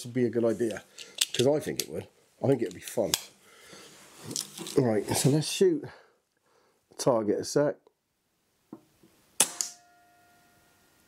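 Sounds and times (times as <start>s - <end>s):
air rifle shot: 9.4s - 9.8s
faint ringing tone: 9.8s - 11.0s.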